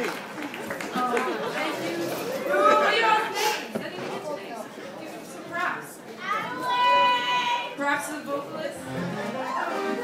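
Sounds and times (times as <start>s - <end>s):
audience chatter in hall: 0.0s - 10.0s.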